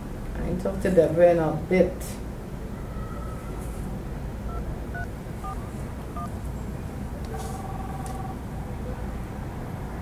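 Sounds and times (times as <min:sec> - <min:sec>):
low steady hum: 0:00.0 - 0:10.0
touch-tone keypad beeps: 0:07.3 - 0:08.4.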